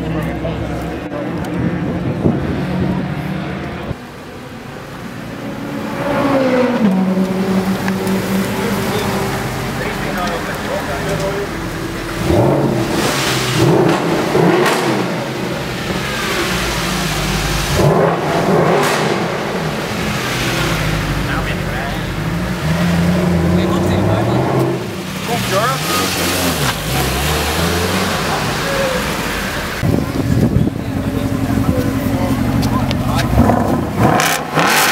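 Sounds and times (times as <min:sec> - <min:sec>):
car engine revving in a tunnel: 0:00.9 - 0:34.9.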